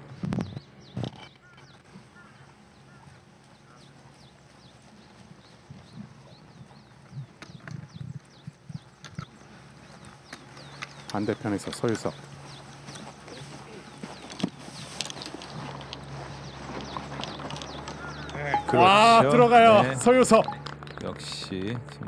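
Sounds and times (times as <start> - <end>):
faint birds chirping: 0.0 - 21.6.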